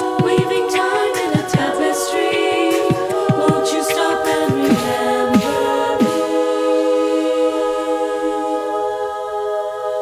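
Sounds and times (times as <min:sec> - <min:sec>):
beatbox kicks: 0:00.0 - 0:06.5
vocal hi-hat sounds: 0:00.0 - 0:10.0
women singing a cappella chords: 0:00.0 - 0:10.0.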